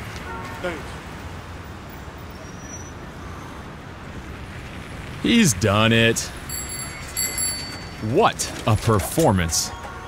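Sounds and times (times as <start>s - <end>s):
traffic hum: 0.0s - 10.0s.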